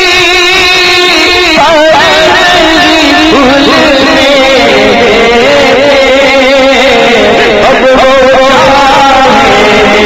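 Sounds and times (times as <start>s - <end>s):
man singing long note: 0.0s - 10.0s.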